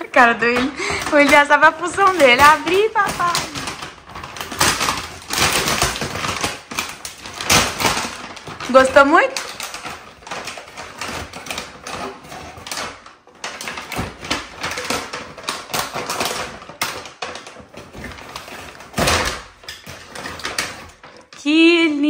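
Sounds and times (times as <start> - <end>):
wrapping paper tearing and crinkling: 0.0 - 21.4.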